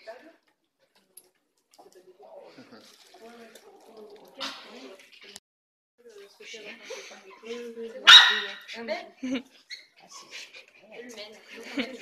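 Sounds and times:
small dog barking: 8.1 - 8.7.

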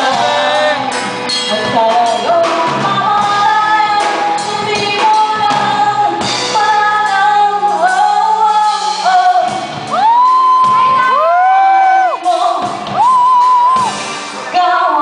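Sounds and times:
woman singing: 0.0 - 13.7, 14.4 - 15.0
live rock band: 0.0 - 15.0.

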